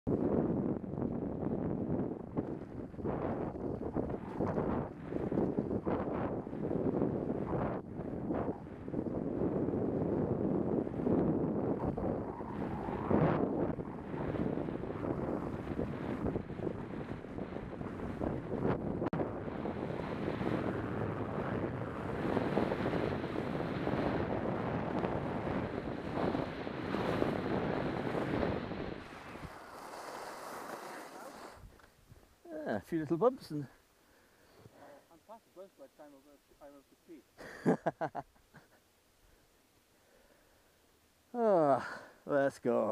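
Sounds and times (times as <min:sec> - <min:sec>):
wind buffeting microphone: 0:00.1 - 0:30.0
skis hissing on snow: 0:26.4 - 0:31.8.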